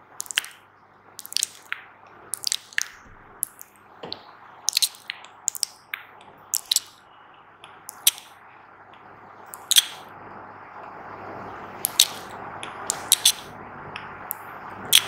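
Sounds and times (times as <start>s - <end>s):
wet mouth clicks and smacks: 0.2s - 0.6s, 1.2s - 3.8s, 4.7s - 7.0s, 7.6s - 8.3s, 9.5s - 10.0s, 11.8s - 13.5s.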